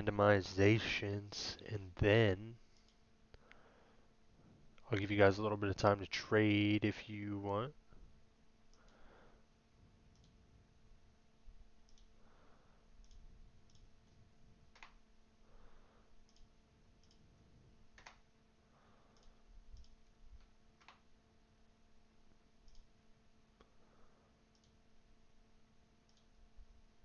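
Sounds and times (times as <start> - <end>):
faint electrical hum: 0.0 - 27.0
computer mouse clicks: 8.7 - 9.0, 10.1 - 10.4, 11.8 - 12.2, 13.0 - 15.0, 16.2 - 17.3, 18.0 - 18.2, 19.1 - 21.0, 22.6 - 22.9, 24.5 - 24.8, 26.0 - 26.4.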